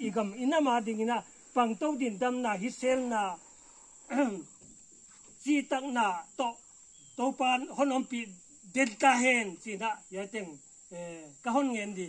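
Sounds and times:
man speaking: 0:00.0 - 0:03.5, 0:04.1 - 0:04.5, 0:05.4 - 0:06.6, 0:07.2 - 0:12.0
high-pitched insect trill: 0:00.0 - 0:12.0.

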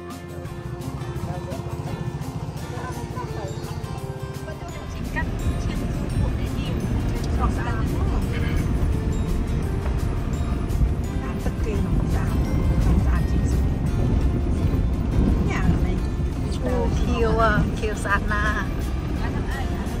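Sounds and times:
low vehicle rumble: 0:00.0 - 0:20.0
music: 0:00.0 - 0:20.0
voices: 0:00.0 - 0:20.0.

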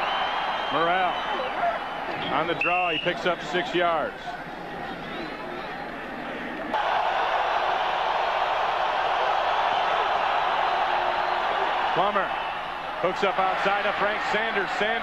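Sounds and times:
stadium crowd hubbub: 0:00.0 - 0:15.0.

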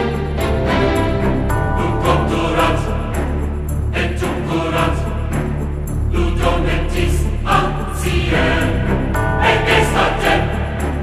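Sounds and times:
background music: 0:00.0 - 0:11.0
choir singing: 0:00.0 - 0:11.0.

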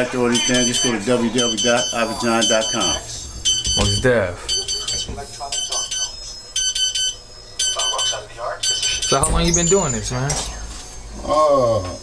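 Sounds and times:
digital timer beeping: 0:00.0 - 0:10.8.

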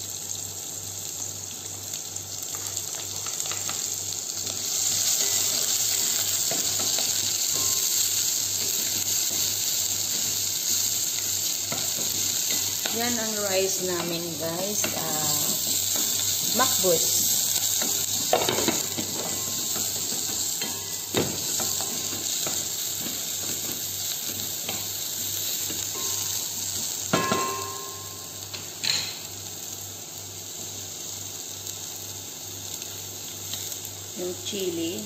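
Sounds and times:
onion sizzling in oil: 0:00.0 - 0:35.0
utensils knocking on pots: 0:05.2 - 0:10.4, 0:11.7 - 0:23.8, 0:27.1 - 0:29.2.

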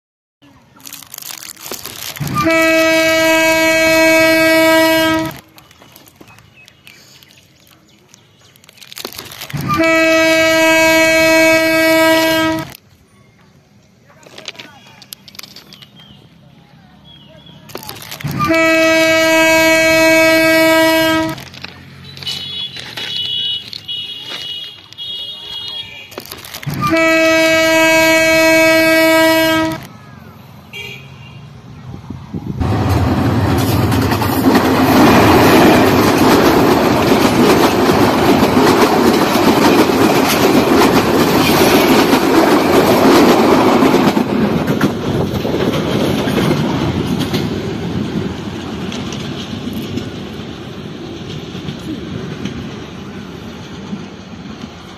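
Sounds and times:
train wheels on rails: 0:00.5 - 0:30.6, 0:31.6 - 0:54.9
train horn blast: 0:02.2 - 0:05.5, 0:09.6 - 0:12.8, 0:18.3 - 0:21.4, 0:26.7 - 0:29.9.

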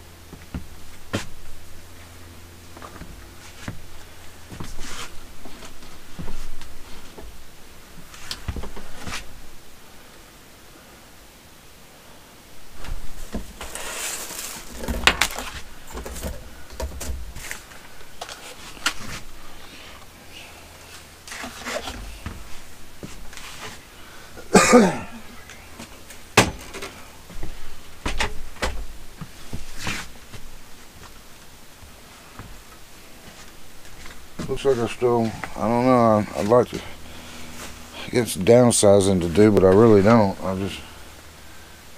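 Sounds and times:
rustling of clothes: 0:00.0 - 0:10.4, 0:12.4 - 0:41.9.

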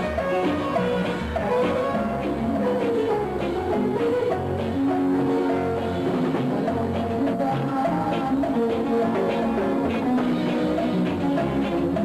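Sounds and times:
drums: 0:00.0 - 0:12.0
electric bass guitar: 0:00.0 - 0:12.0.

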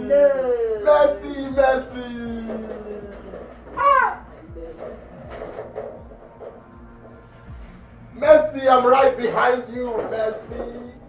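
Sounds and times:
high-pitched vocal shout: 0:03.7 - 0:04.3.

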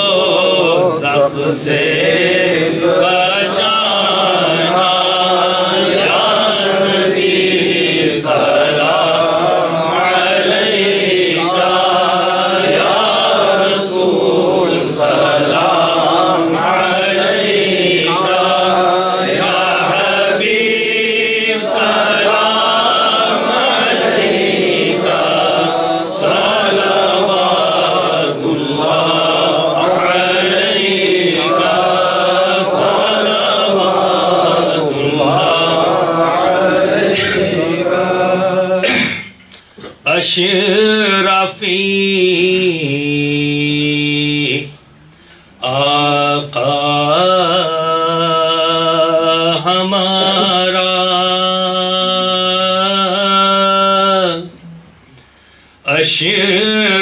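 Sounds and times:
men chanting together: 0:00.0 - 0:39.2, 0:45.6 - 0:54.5.

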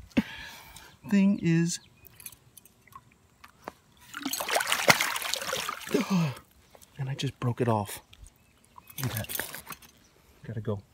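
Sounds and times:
fish splashing in water: 0:04.1 - 0:06.0.

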